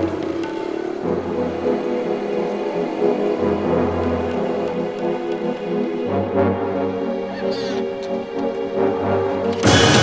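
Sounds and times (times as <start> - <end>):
sustained synthesizer chords: 0.0 - 10.0.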